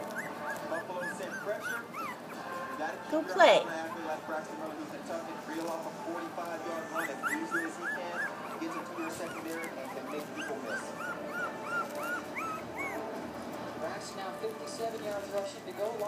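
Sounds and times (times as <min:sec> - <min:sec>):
small dog whimpering: 0:00.0 - 0:02.7, 0:06.7 - 0:13.1.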